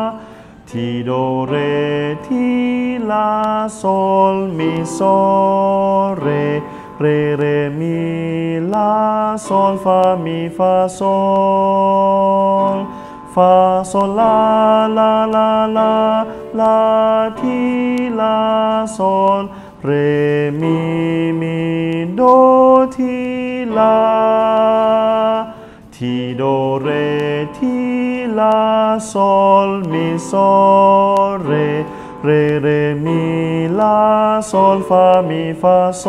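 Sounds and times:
man singing unaccompanied: 0:00.0 - 0:36.0.

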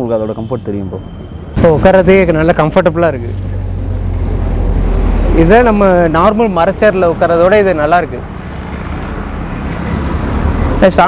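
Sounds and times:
passing vehicle rumble: 0:01.6 - 0:11.0.

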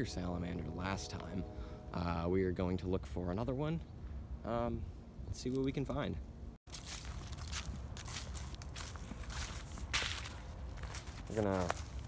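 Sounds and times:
footsteps crunching dry leaves: 0:06.7 - 0:12.0.

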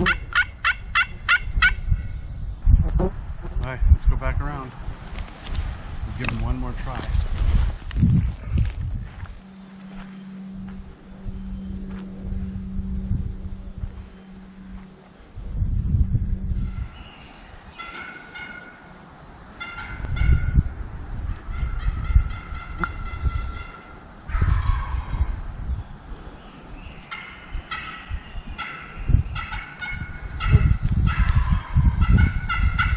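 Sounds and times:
turkey calling: 0:00.0 - 0:02.2, 0:16.6 - 0:19.0, 0:19.6 - 0:20.6, 0:21.3 - 0:25.4, 0:26.6 - 0:32.9
low hum: 0:04.7 - 0:32.9
rustling through brush: 0:04.8 - 0:10.5.

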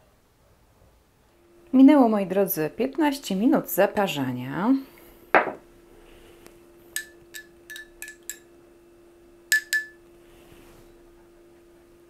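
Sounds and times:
faint steady hum: 0:00.0 - 0:12.0
glass mug clinking: 0:07.0 - 0:08.5, 0:09.5 - 0:10.0.

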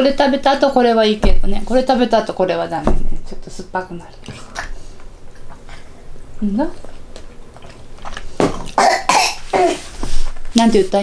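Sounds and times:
person coughing: 0:08.7 - 0:09.9.

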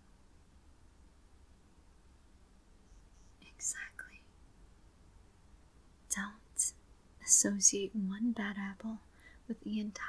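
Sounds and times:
faint room hiss: 0:00.0 - 0:10.0
woman whispering: 0:03.4 - 0:04.3, 0:06.1 - 0:10.0.

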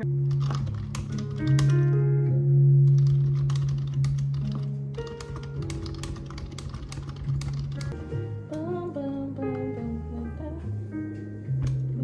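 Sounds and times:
background music with bass line: 0:00.0 - 0:06.5, 0:07.2 - 0:12.0
fast keyboard typing: 0:00.2 - 0:02.0, 0:02.9 - 0:08.0.

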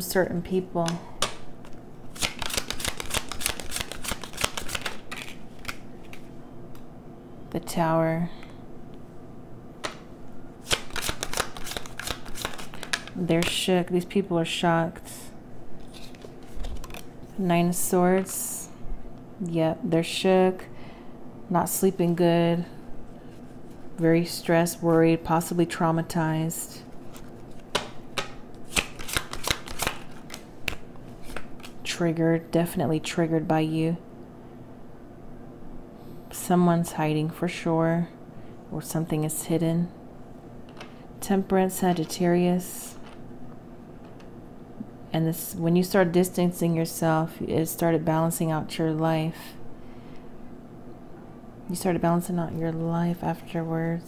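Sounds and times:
cards being shuffled: 0:00.8 - 0:06.4, 0:10.6 - 0:13.5, 0:15.8 - 0:17.4, 0:26.9 - 0:31.8.

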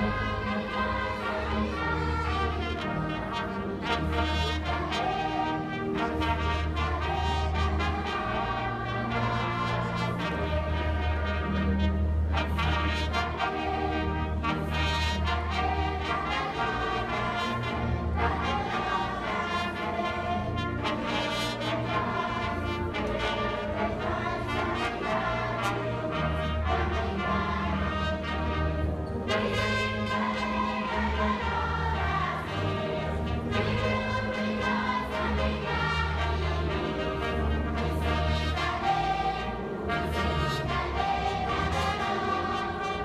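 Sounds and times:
brass orchestra playing: 0:00.0 - 0:43.0.

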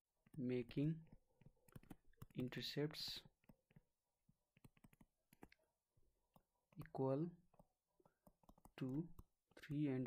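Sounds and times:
stylus tapping on tablet screen: 0:00.2 - 0:02.5, 0:03.2 - 0:09.8.

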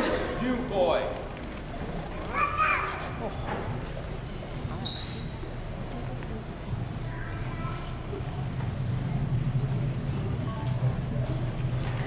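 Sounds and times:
faint voices: 0:00.0 - 0:12.0
steady low hum: 0:00.0 - 0:12.0.

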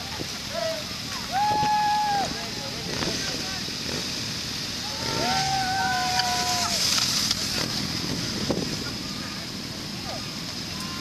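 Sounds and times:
motorcycles riding past: 0:00.1 - 0:11.0.

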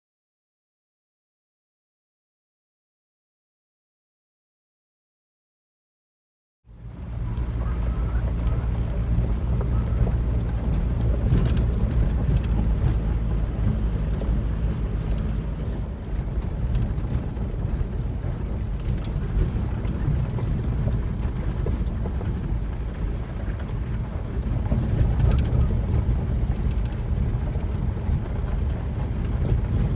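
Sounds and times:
car engine and road rumble: 0:06.7 - 0:29.9
faint gravel clicks: 0:07.0 - 0:29.9.

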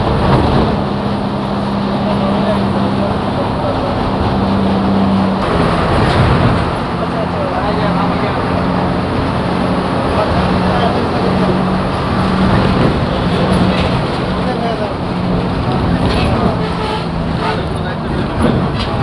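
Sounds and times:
bus engine drone: 0:00.0 - 0:19.0
road noise: 0:00.0 - 0:19.0.

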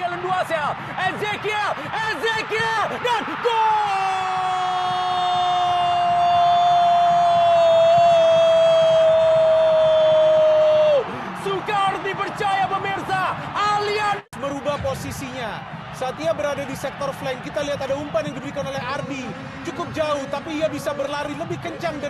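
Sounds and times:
commentator shouting goal: 0:00.0 - 0:09.5
excited commentary: 0:00.0 - 0:22.0.

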